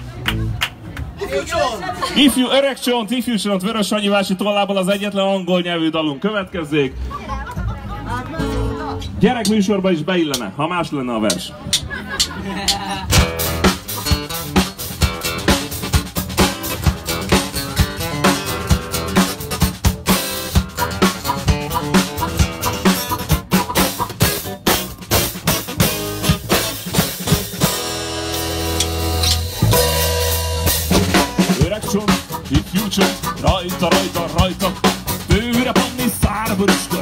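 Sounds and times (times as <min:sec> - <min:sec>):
live band playing: 0:08.3 - 0:09.6, 0:11.3 - 0:37.0
drum kit beating: 0:11.3 - 0:37.0
held low chords: 0:13.1 - 0:37.0.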